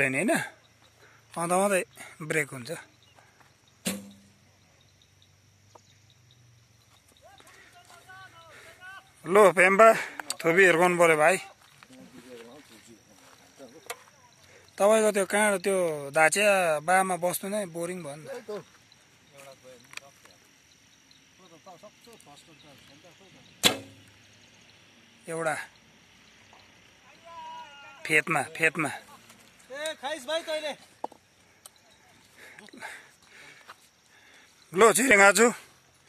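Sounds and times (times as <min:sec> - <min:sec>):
bow shot low hum: 0:03.8 - 0:04.4, 0:23.6 - 0:24.1.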